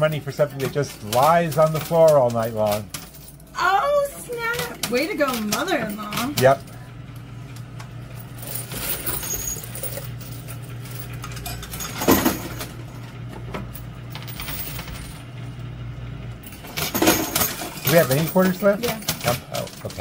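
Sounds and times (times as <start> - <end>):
coins clinking: 0.0 - 6.8, 8.1 - 13.0, 13.6 - 15.4, 16.4 - 20.0
machine low hum: 0.0 - 20.0.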